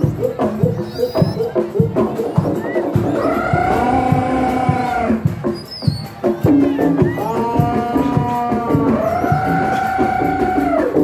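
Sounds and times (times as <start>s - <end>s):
steady drumbeat: 0.0s - 11.0s.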